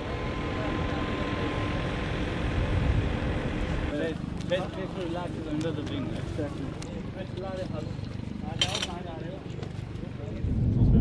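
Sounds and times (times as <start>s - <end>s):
low outdoor rumble: 0.0s - 11.0s
men talking indistinctly: 3.9s - 11.0s.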